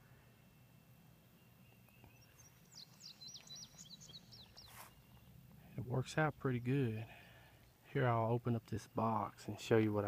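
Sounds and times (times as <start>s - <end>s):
songbird chirping: 0.0s - 10.0s
brief rustle: 4.5s - 5.0s.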